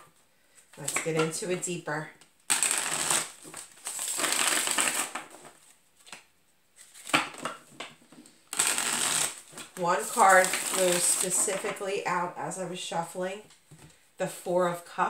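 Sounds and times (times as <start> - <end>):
cards shuffling: 2.5 - 11.8.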